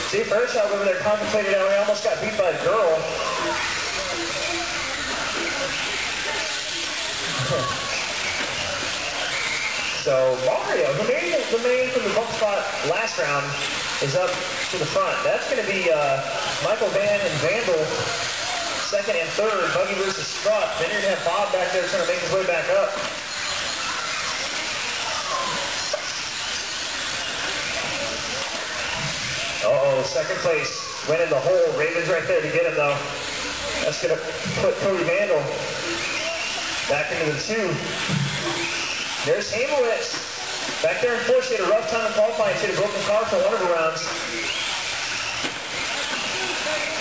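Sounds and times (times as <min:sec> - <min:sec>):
motor whines: 0:00.0 - 0:47.0.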